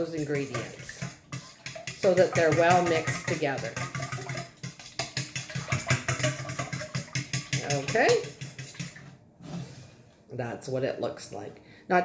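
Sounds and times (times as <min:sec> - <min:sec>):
fork beating in a metal bowl: 0:00.0 - 0:09.0.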